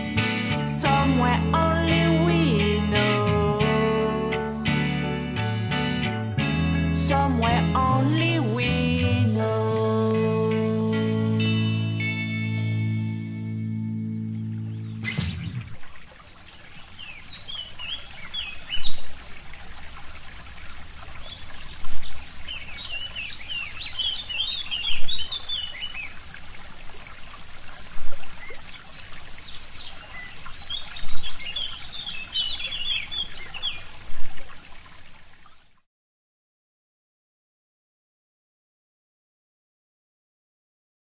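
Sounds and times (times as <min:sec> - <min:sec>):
held musical chord: 0:03.7 - 0:15.3
running water trickling: 0:14.2 - 0:35.9
small birds chirping: 0:14.3 - 0:19.2, 0:21.1 - 0:26.3, 0:28.1 - 0:35.8.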